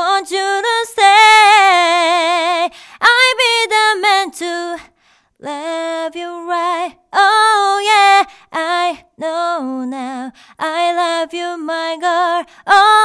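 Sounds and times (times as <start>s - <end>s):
woman singing unaccompanied: 0.0s - 13.0s.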